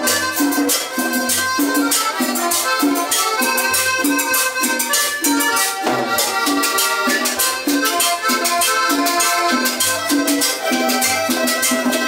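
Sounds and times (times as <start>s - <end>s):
accordion melody: 0.0s - 12.0s
conga drums: 0.0s - 12.0s
scraped and shaken rhythm: 0.0s - 12.0s
upright bass: 0.0s - 12.0s.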